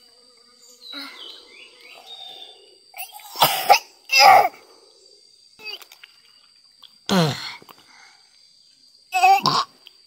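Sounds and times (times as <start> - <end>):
person coughing: 3.4 - 4.5.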